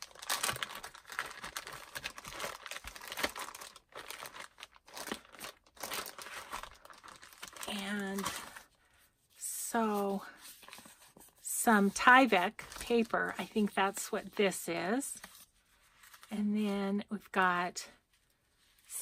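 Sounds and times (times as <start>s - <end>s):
plastic bag crinkling: 0.0s - 8.7s
papers and fabric handled: 0.0s - 16.8s.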